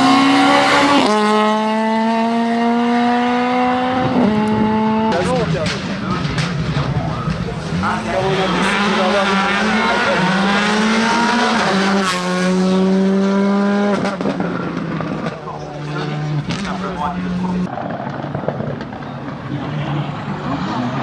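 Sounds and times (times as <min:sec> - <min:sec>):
rally car accelerating: 0:00.0 - 0:21.0.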